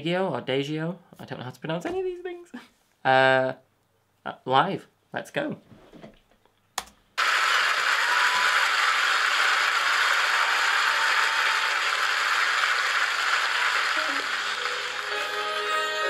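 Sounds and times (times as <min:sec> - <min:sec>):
audience applauding: 0:07.2 - 0:16.0
sustained instrumental notes: 0:14.2 - 0:16.0.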